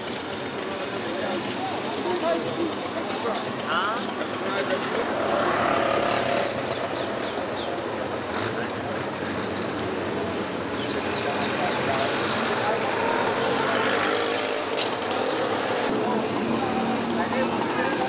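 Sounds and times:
many people talking: 0.0 - 18.0
motor traffic: 0.0 - 18.0.

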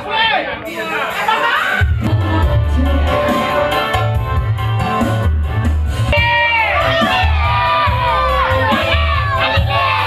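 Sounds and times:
crowd shouting and cheering: 0.0 - 10.0
background music with bass beat: 0.8 - 10.0.

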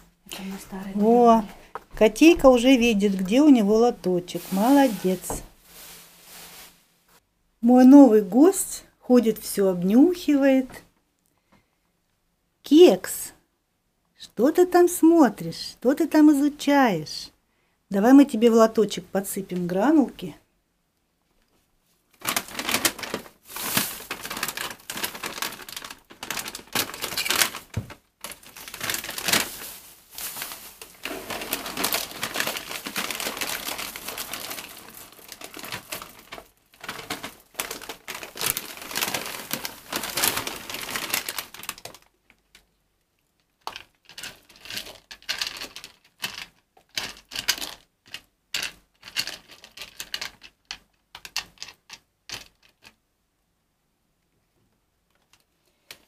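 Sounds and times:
plastic bag crinkling: 0.4 - 6.9, 22.2 - 42.6, 43.6 - 50.6
bag rustling: 4.2 - 6.9, 22.2 - 41.8
litter pellets clattering into tray: 22.7 - 27.6, 28.3 - 41.3.

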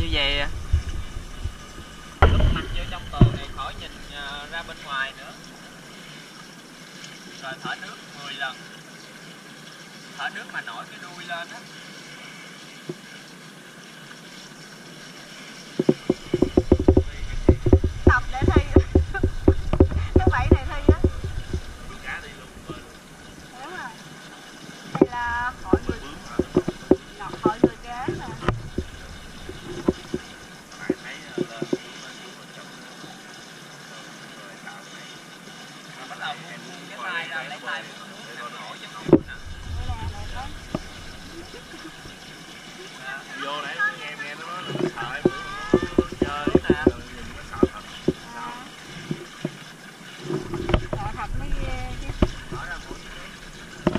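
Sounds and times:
pool water splashing: 0.0 - 53.9
water lapping: 0.0 - 53.9
voices: 2.2 - 5.6, 15.8 - 24.2, 24.9 - 35.2, 36.0 - 49.2, 50.7 - 53.9.

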